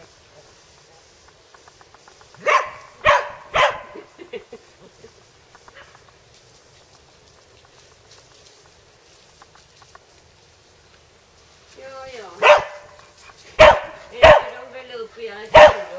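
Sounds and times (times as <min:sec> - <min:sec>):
dog barking: 0:02.4 - 0:04.1, 0:12.4 - 0:13.0, 0:13.6 - 0:14.6, 0:15.5 - 0:15.9.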